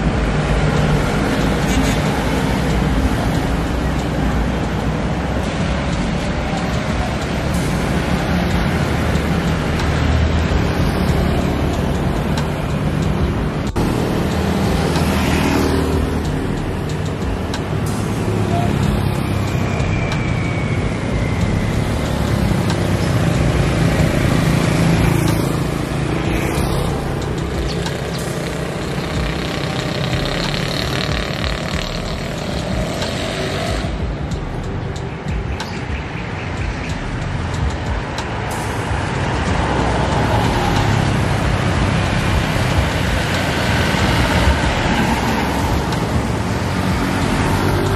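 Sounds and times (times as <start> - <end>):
motorcycles and cars passing: 0.0 - 47.9.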